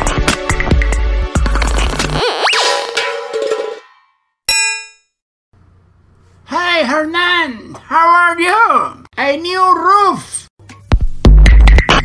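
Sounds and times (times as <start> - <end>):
metallic bell-like ding: 3.8 - 5.1.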